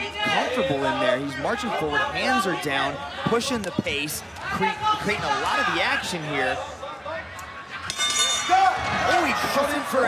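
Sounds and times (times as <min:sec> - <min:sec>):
boxing ring bell: 0:07.9 - 0:08.7.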